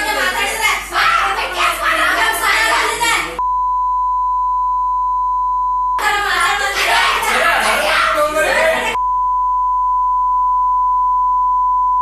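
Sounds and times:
voices speaking: 0:00.0 - 0:03.4, 0:06.0 - 0:09.0
censor bleep: 0:03.4 - 0:06.0, 0:09.0 - 0:12.0.

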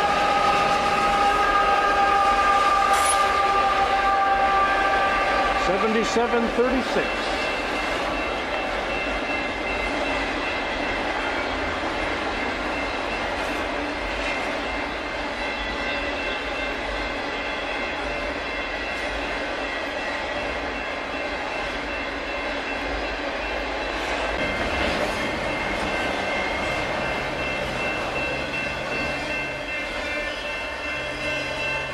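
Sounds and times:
train wheels rumbling on rail: 0:00.0 - 0:31.9.

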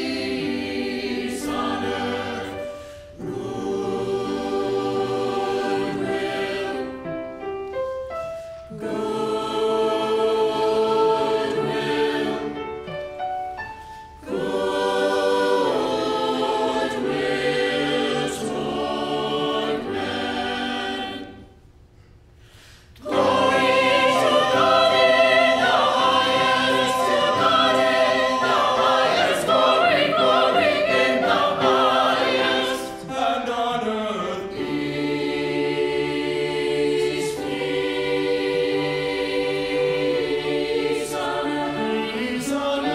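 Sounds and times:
church choir singing: 0:00.0 - 0:21.8, 0:22.6 - 0:42.9.

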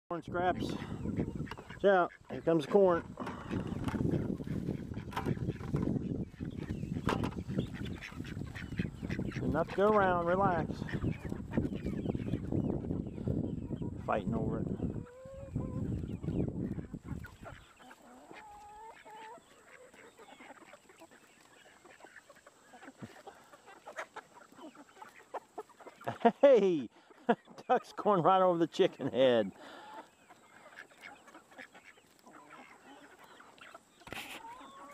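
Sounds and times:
ducks quacking: 0:00.1 - 0:34.9
chickens squawking: 0:00.2 - 0:34.9
husks rustling and scratching: 0:01.2 - 0:12.6, 0:15.4 - 0:34.9.

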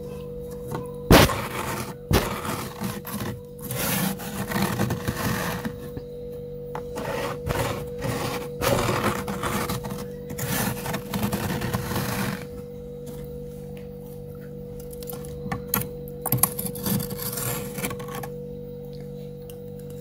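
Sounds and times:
steady hum: 0:00.0 - 0:20.0
fingers scraping freezer frost: 0:01.1 - 0:06.0, 0:06.8 - 0:12.6, 0:16.4 - 0:18.3.

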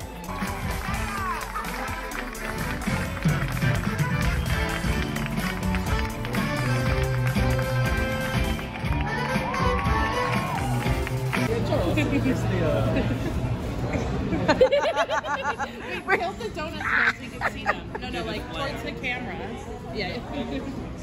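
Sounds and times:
live band music: 0:00.0 - 0:11.5.

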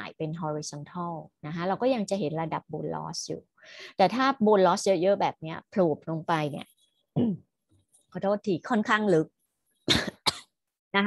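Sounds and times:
woman coughing: 0:09.9 - 0:10.5.

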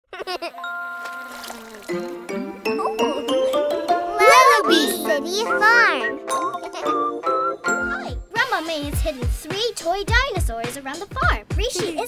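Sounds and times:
cartoon giggle: 0:00.1 - 0:00.7.

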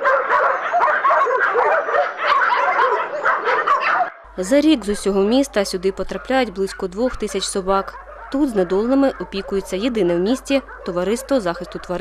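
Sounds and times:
dogs barking and yelping: 0:00.0 - 0:04.3, 0:06.0 - 0:12.0.

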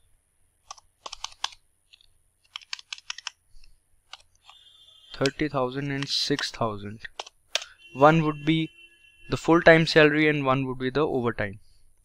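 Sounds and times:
computer keyboard typing: 0:00.7 - 0:01.6, 0:02.5 - 0:03.4.

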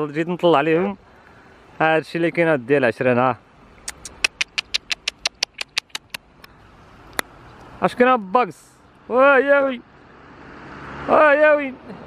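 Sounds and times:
outdoor background noise: 0:00.0 - 0:12.0
rapid sharp clicks: 0:03.9 - 0:06.5.

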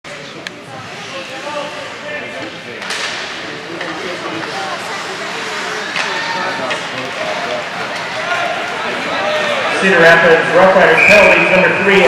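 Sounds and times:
people's voices: 0:00.1 - 0:12.0
hockey sticks clacking on puck: 0:02.4 - 0:08.4.

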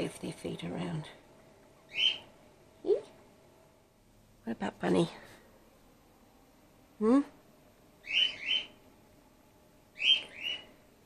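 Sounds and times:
bat pup squeaky calls: 0:01.9 - 0:02.3, 0:08.0 - 0:08.7, 0:10.0 - 0:10.7.

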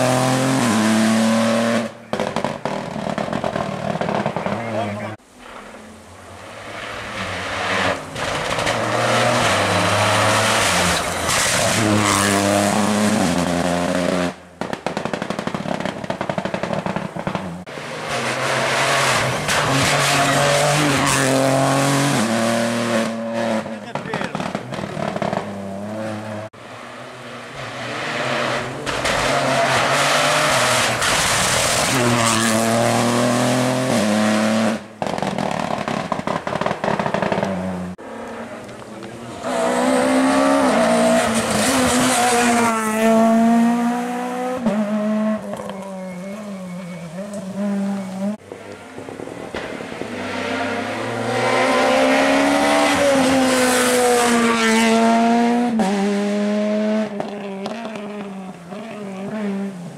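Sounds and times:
rally cars passing at full throttle: 0:00.0 - 0:59.9.

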